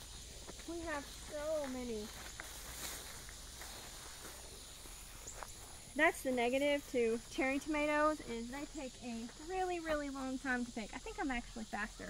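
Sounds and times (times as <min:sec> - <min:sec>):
rustling of plant foliage: 0:00.0 - 0:12.0.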